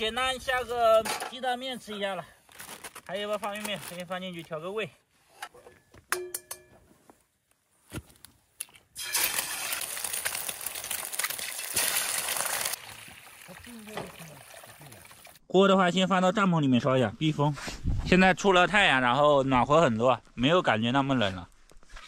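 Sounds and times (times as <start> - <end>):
egg sizzling in oil: 9.0 - 15.4.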